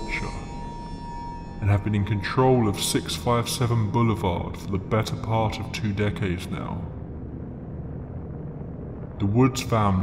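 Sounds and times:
low rumbling ambient drone: 0.0 - 10.0.

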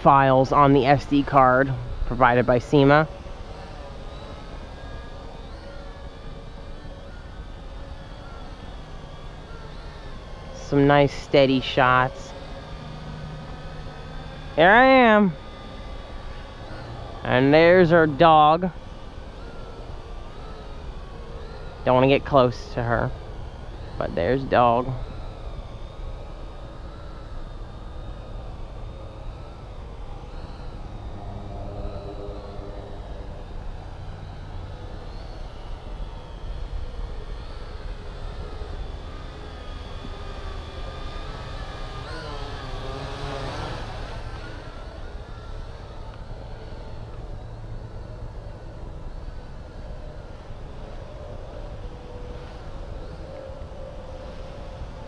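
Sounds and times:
drone propellers whining: 0.0 - 55.0.

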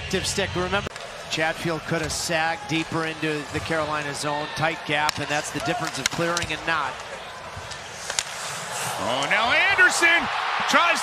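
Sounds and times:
sticks and puck clacking on ice: 1.9 - 9.8.

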